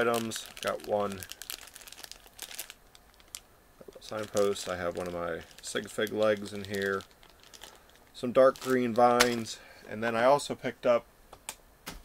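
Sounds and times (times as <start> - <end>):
plastic bag crinkling: 0.0 - 9.6.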